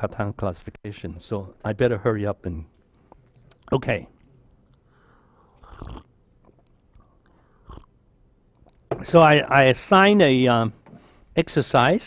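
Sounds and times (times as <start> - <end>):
man sipping and swallowing: 2.8 - 8.9.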